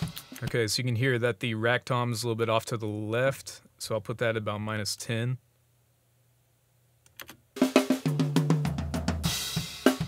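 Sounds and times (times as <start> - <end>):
fast drum tom fill: 0.0 - 0.5, 7.6 - 10.0.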